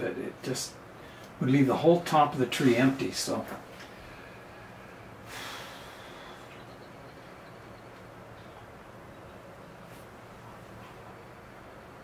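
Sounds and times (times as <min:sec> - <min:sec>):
low room tone hum: 0:00.0 - 0:12.0
sharp breath out through nose: 0:04.1 - 0:06.6.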